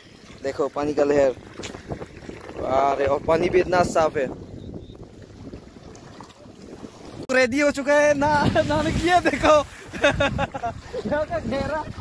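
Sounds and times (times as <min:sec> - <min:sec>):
lake waves lapping: 0:00.0 - 0:07.3, 0:08.3 - 0:12.0
wind buffeting microphone: 0:00.1 - 0:07.3, 0:07.9 - 0:12.0.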